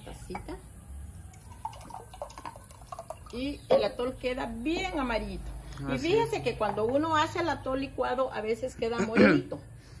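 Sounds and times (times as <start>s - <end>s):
thick liquid pouring into glass mug: 1.3s - 3.4s.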